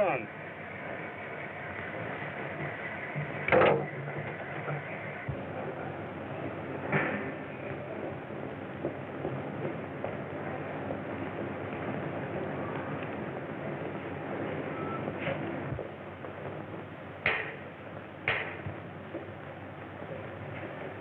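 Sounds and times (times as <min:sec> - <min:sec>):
film soundtrack hiss: 0:00.0 - 0:21.0.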